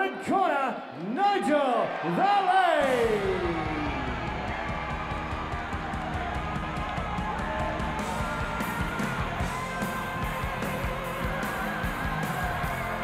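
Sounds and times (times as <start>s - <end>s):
drum beat: 2.8s - 13.0s.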